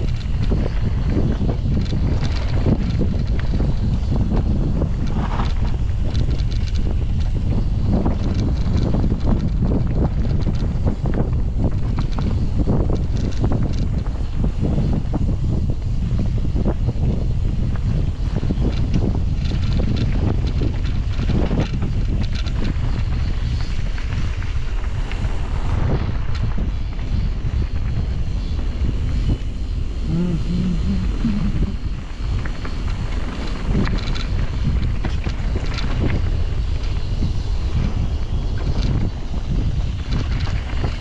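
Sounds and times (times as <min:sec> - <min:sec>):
bike rattles and clicks: 0:00.0 - 0:41.0
wind rushing over microphone: 0:00.0 - 0:41.0.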